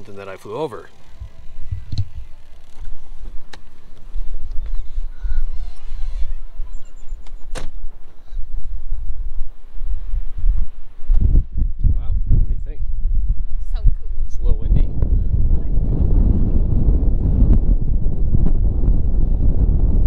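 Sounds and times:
gusty wind buffeting microphone: 0.0 - 20.0.

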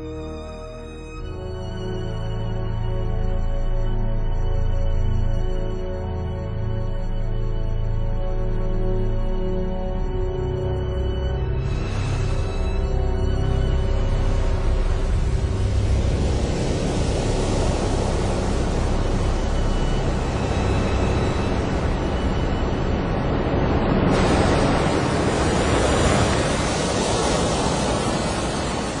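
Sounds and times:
surf breaking and splashing: 11.6 - 29.0.

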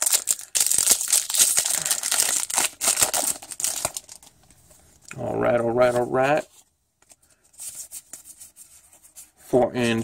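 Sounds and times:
foil wrapper crinkling and tearing: 0.0 - 4.3.

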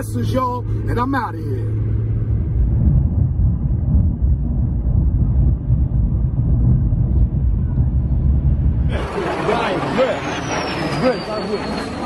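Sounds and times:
bystanders' voices: 8.9 - 12.0
high whistle sliding down: 10.0 - 12.0.

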